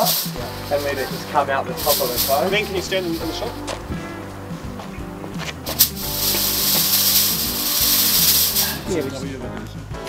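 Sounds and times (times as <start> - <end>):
smoke machine hissing: 0.0 - 9.4
background music: 0.0 - 10.0.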